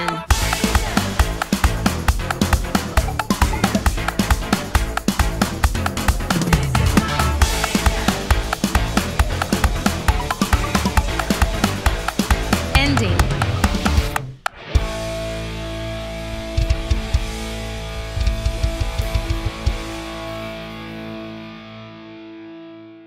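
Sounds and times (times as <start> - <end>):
band with drums and electric guitars: 0.0 - 21.5
drum hits: 0.2 - 14.6.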